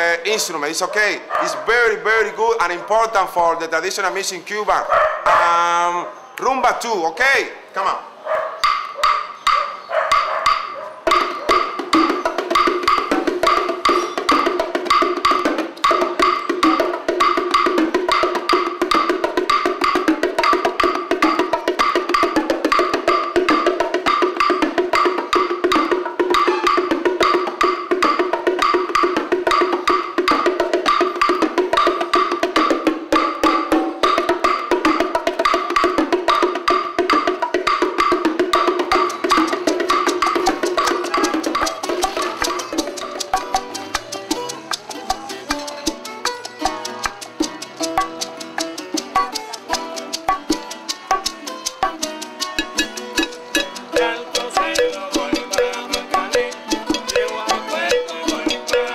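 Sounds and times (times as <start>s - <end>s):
bongos playing: 8.6s - 58.9s
stick beating wooden tube: 8.6s - 58.9s.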